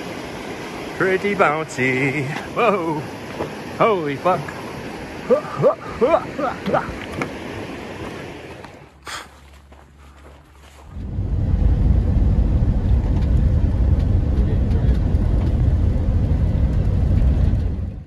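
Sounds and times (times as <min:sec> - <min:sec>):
road and wind noise in vehicle: 0:00.0 - 0:18.0.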